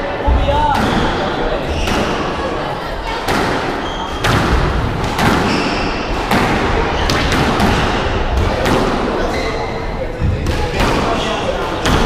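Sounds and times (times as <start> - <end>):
squash ball hits: 0.3 - 2.4, 3.2 - 9.4, 10.2 - 12.0.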